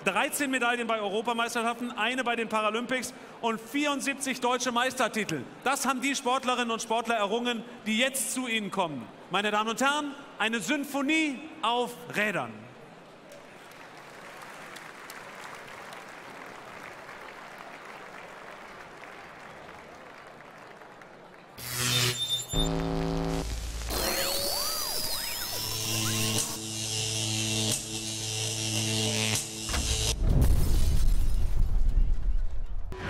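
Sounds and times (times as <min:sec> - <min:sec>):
audience applause: 0:13.4 - 0:21.6
electronic show music: 0:21.6 - 0:30.2.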